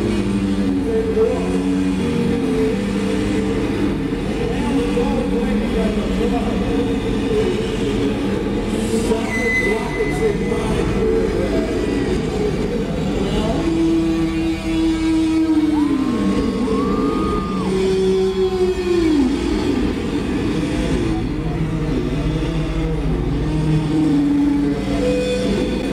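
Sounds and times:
distorted electric guitars: 0.0 - 25.9.

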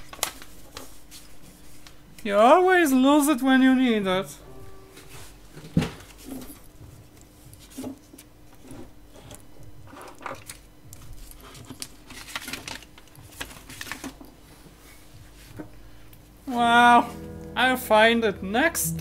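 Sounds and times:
faint steady hum: 14.2 - 19.0.

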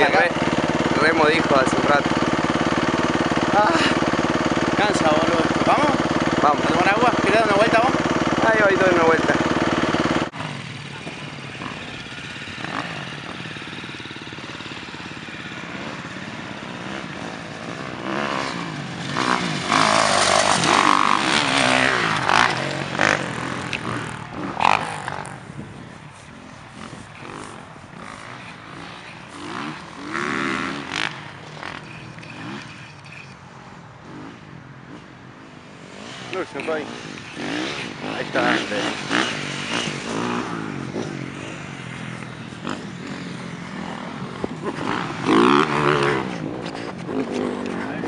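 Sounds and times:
dirt bike engine revving: 0.0 - 33.4, 34.0 - 48.0.

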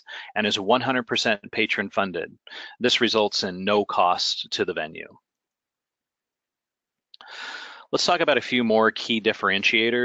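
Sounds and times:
person speaking: 0.0 - 5.2, 7.2 - 10.0.

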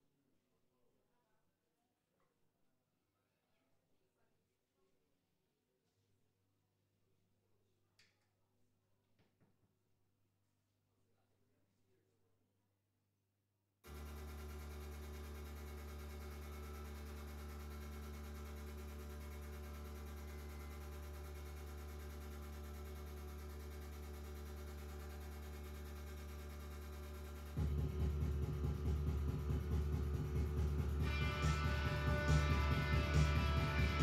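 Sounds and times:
low drone with hum: 26.4 - 34.0
band music with heavy bass: 27.6 - 34.0.

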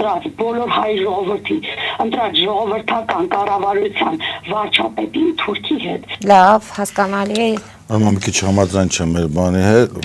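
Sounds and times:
person talking: 0.0 - 9.1.

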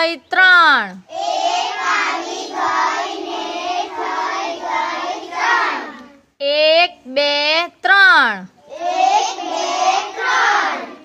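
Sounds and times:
children singing together: 1.1 - 6.2, 8.6 - 11.0.

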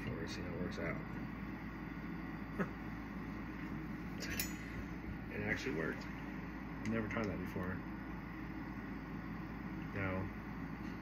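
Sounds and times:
light clink: 4.2 - 4.8.

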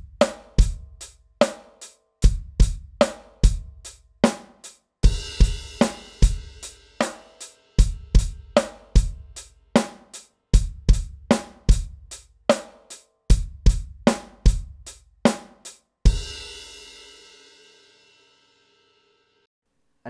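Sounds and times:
electronic drum groove: 0.0 - 1.6, 5.0 - 16.4.

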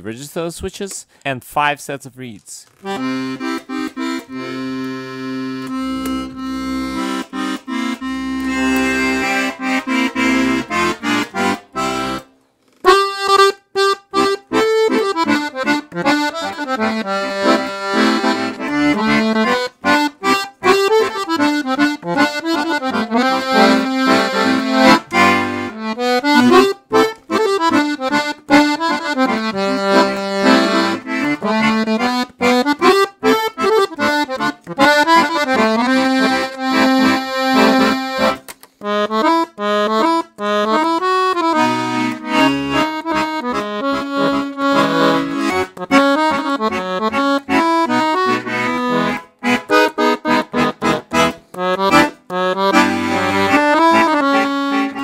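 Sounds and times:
piano accordion playing: 2.8 - 55.0.

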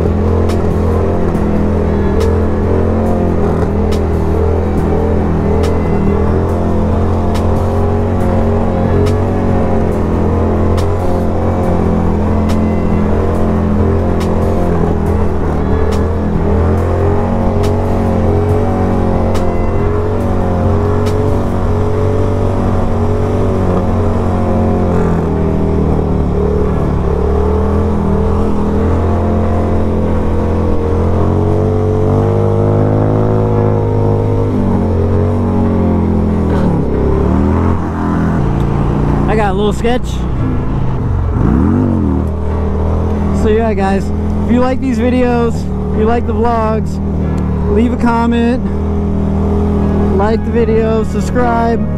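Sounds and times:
motorcycle engine running: 0.0 - 51.9.

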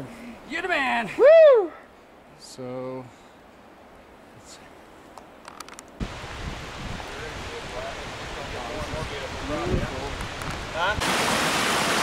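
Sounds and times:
faint clicks: 5.1 - 6.0
stream running over rocks: 6.0 - 12.0.

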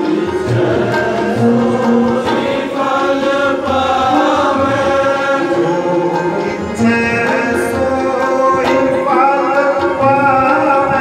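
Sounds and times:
musical accompaniment: 0.0 - 11.0
voices singing along: 0.0 - 11.0.

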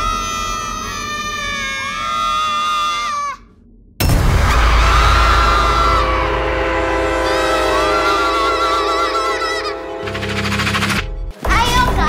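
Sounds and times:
eerie high wailing tones: 0.0 - 3.6, 4.3 - 11.3.

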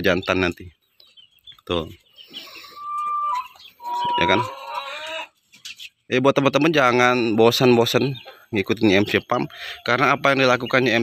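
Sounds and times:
chicken calling: 1.0 - 6.1, 7.2 - 11.0.

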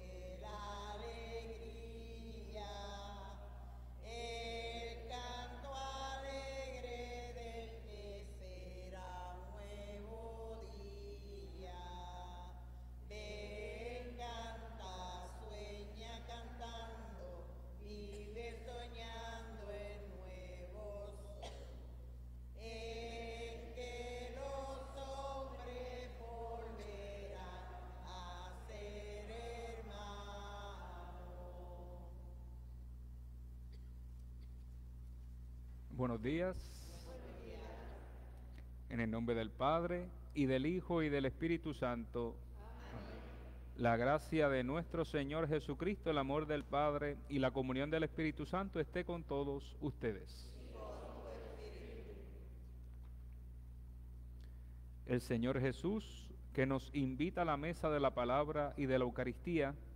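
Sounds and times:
person singing a hymn: 0.0 - 21.7, 22.6 - 32.3
low electrical hum: 0.0 - 59.9.

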